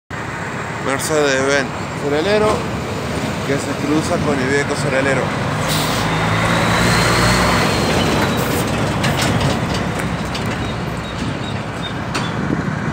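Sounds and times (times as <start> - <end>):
road and traffic noise: 0.1 - 12.9
truck passing close by: 0.1 - 12.9.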